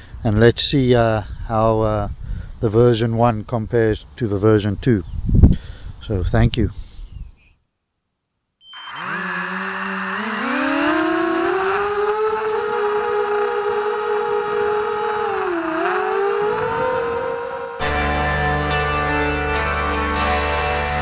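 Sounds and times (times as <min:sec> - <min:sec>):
quadcopter motors whining: 0:08.7 - 0:18.4.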